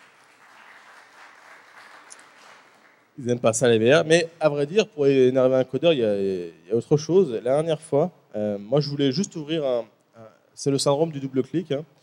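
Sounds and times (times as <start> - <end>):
faint audience applause: 0.0 - 3.2.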